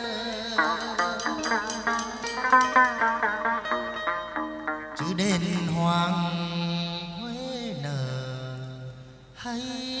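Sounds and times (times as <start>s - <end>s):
ritual music ensemble: 0.0s - 6.6s.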